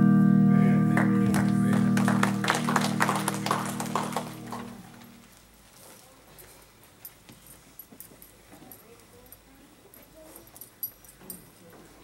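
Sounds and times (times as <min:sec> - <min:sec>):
acoustic guitar chord ringing: 0:00.0 - 0:05.2.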